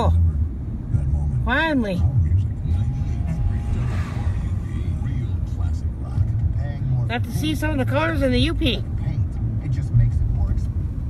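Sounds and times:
car road noise rumble: 0:00.0 - 0:11.0.

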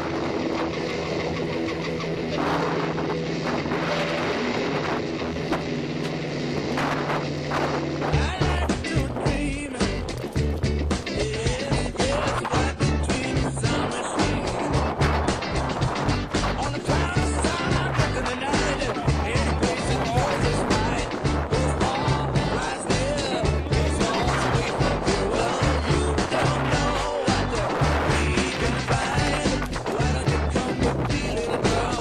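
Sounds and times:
speedboat motor drone: 0:00.0 - 0:08.4
wind noise on microphone: 0:00.0 - 0:32.0
music with heavy bass beat: 0:00.7 - 0:32.0.

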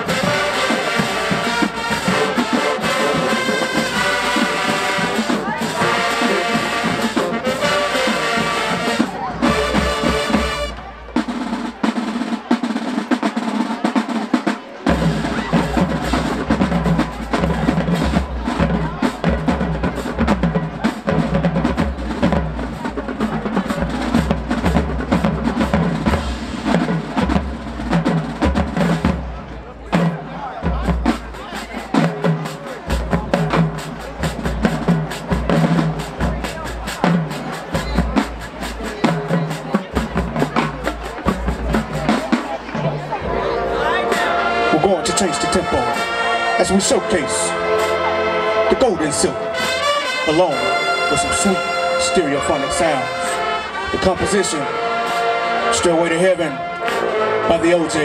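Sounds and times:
snare drum rolls: 0:00.0 - 0:43.2.

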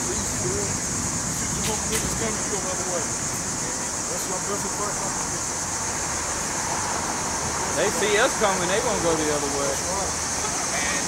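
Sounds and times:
high hiss: 0:00.0 - 0:11.0
traffic rushing: 0:00.0 - 0:11.0.

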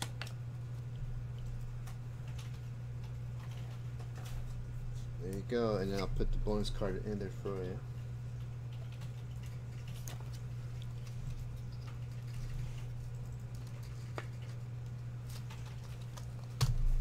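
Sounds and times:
trading cards clicking and rustling: 0:00.0 - 0:07.8, 0:08.4 - 0:17.0
steady low hum: 0:00.0 - 0:17.0.

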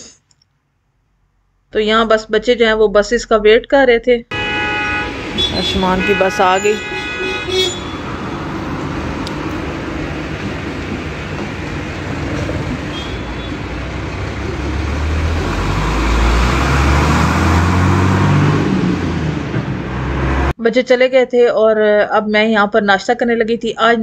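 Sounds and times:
bus engine running and revving: 0:04.3 - 0:20.6
street traffic noise: 0:04.3 - 0:20.6.

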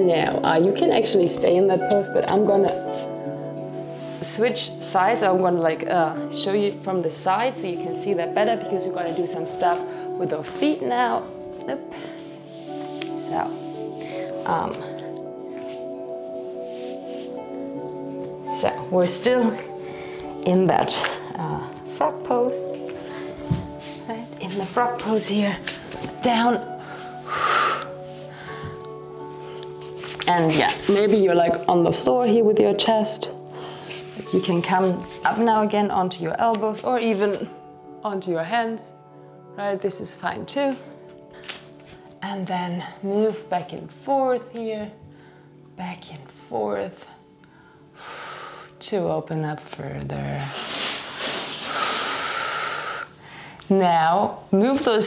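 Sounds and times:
background music: 0:00.0 - 0:55.0
woman breathing: 0:11.8 - 0:13.0, 0:13.7 - 0:16.0, 0:19.7 - 0:20.4, 0:23.0 - 0:24.1, 0:26.7 - 0:30.0, 0:33.4 - 0:34.2, 0:45.1 - 0:45.6, 0:47.4 - 0:48.8, 0:50.6 - 0:53.7
long breathy exhale: 0:51.2 - 0:53.6.

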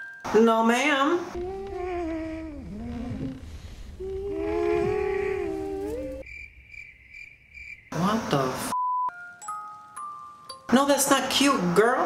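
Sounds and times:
long wavering hum: 0:01.3 - 0:06.3.

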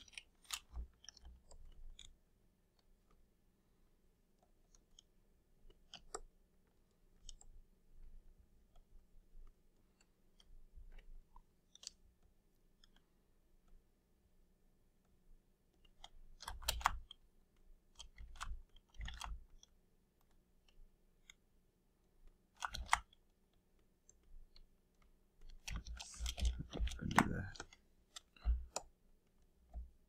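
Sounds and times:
computer mouse clicks and taps: 0:00.0 - 0:03.2, 0:04.3 - 0:13.8, 0:15.0 - 0:30.0.

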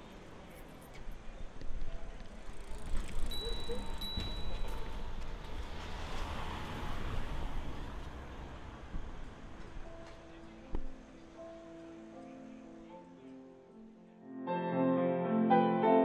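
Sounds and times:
vehicle passing by: 0:04.7 - 0:09.2.

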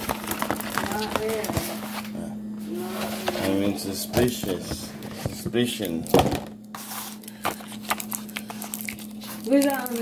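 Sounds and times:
plastic packaging crinkling: 0:00.0 - 0:02.2, 0:05.0 - 0:10.0.

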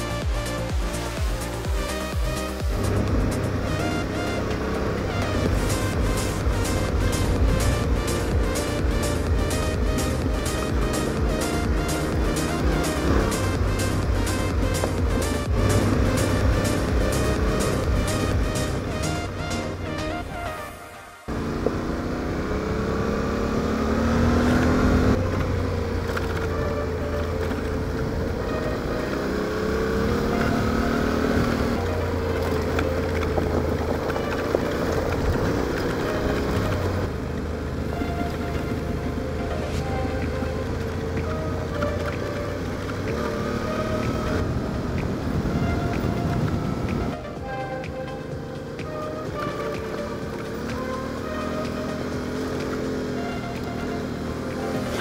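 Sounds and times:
motorcycle engine running: 0:00.0 - 0:20.7, 0:21.3 - 0:55.0
background music: 0:00.0 - 0:55.0.

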